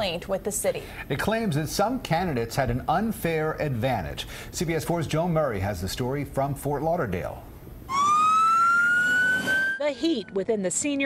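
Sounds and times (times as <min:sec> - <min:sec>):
fire engine siren wailing: 0:07.9 - 0:10.0.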